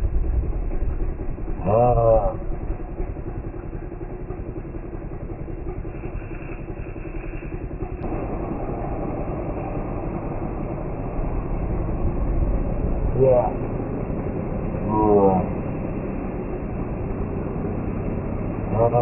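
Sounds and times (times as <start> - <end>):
engine running steadily: 0.0 - 19.0.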